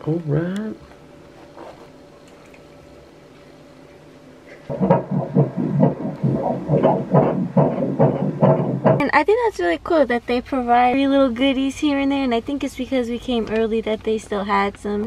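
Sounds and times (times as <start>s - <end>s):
fetal heartbeat through doppler speaker: 4.7s - 9.1s.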